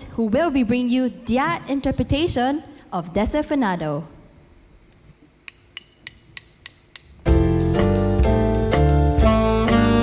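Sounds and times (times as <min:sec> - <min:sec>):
drumsticks clicked together: 0:05.4 - 0:07.2.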